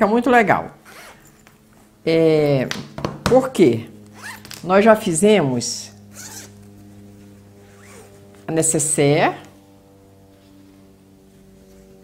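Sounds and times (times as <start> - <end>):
low steady hum: 0.0 - 12.0
cloth bag rustling: 6.1 - 8.5.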